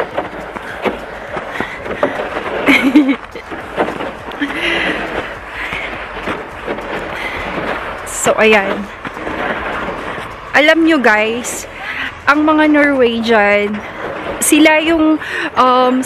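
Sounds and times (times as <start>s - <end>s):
footsteps on snow: 0.0s - 15.4s.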